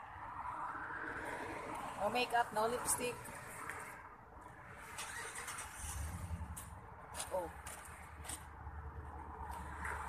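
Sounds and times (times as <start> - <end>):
car passing: 0.0 - 10.0
road traffic rumble: 0.0 - 10.0.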